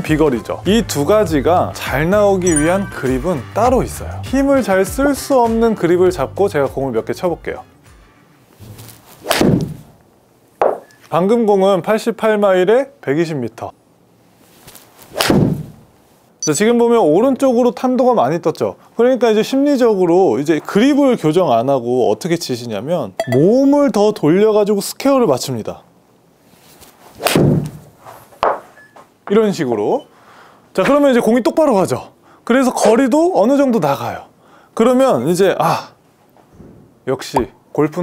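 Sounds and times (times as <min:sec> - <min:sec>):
dull thud: 0:08.6 - 0:09.9, 0:15.2 - 0:15.8, 0:27.3 - 0:28.6
golf club striking ball: 0:10.6 - 0:11.0.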